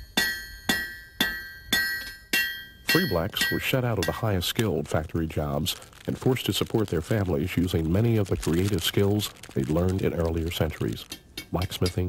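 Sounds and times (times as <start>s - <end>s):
hammer striking an anvil: 0.0s - 4.2s.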